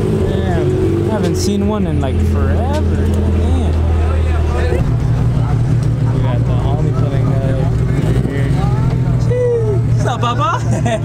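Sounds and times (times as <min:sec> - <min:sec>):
car engine running at low revs: 0:00.0 - 0:11.0
people talking: 0:00.1 - 0:11.0.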